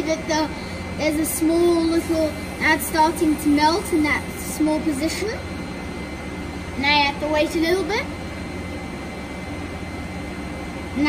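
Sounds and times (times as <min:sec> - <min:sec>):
cooling fan whoosh: 0:00.0 - 0:11.0
faint high whine: 0:00.0 - 0:11.0
low hum: 0:00.0 - 0:11.0.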